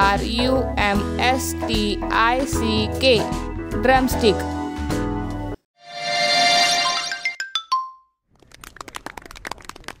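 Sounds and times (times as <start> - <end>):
chime note: 5.8 - 8.1.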